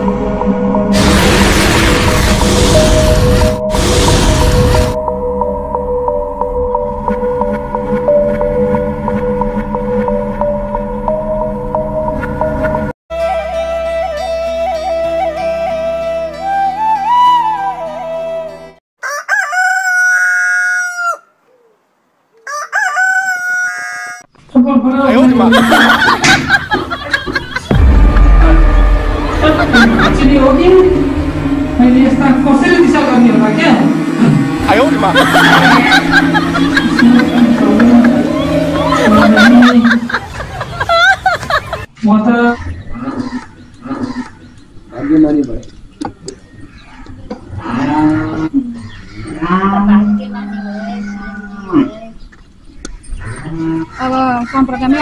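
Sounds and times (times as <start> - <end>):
rooster crowing: 19.0 - 21.4, 22.4 - 24.3, 50.1 - 51.8
loud busy mix of sound: 27.8 - 41.8.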